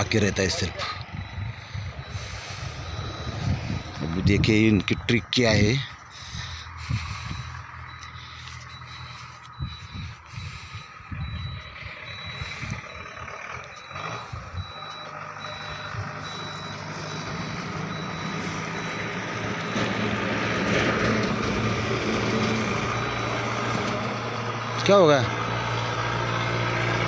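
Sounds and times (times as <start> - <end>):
diesel truck engine running: 0.0 - 27.0
truck reversing beeper: 0.0 - 27.0.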